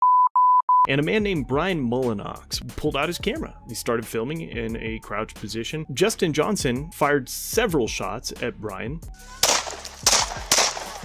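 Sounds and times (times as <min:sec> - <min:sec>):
gunshots: 0:09.3 - 0:11.0.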